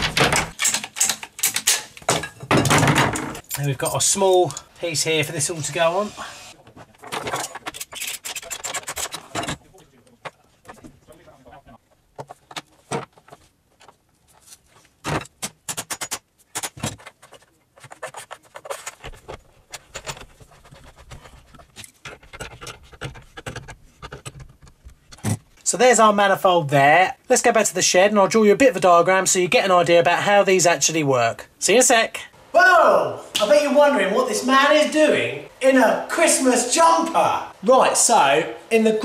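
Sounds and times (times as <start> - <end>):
clicks and knocks: 0.0 - 3.6
plastic pipe rustling and scraping: 6.6 - 15.0, 16.7 - 25.6.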